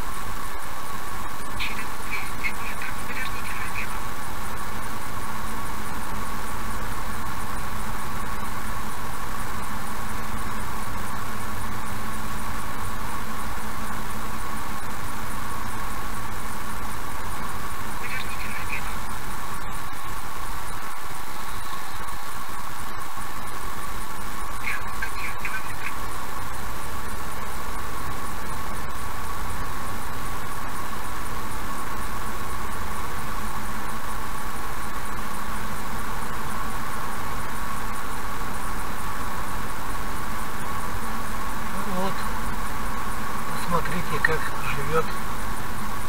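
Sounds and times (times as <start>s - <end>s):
high-pitched whine: 0.0s - 46.0s.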